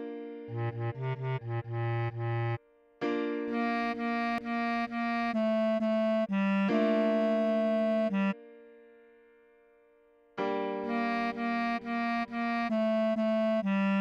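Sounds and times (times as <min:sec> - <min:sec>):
held keyboard chord: 0:00.0 - 0:09.2, 0:10.4 - 0:14.0
bass clarinet melody: 0:00.5 - 0:02.6, 0:03.5 - 0:08.4, 0:10.6 - 0:14.0.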